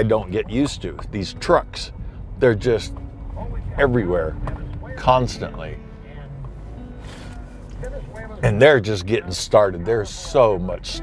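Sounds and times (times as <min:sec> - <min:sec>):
car driving rumble inside cabin: 0:00.0 - 0:11.0
soft background music: 0:00.0 - 0:11.0.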